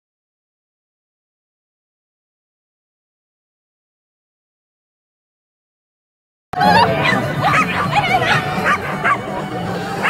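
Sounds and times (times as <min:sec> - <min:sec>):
dog yipping: 0:06.6 - 0:10.0.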